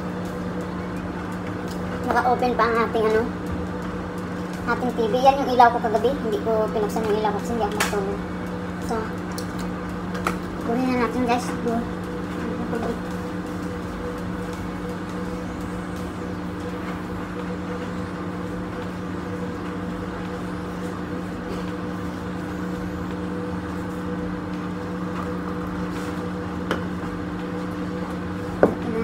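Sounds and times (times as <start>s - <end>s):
appliance electrical hum: 0.0s - 29.0s.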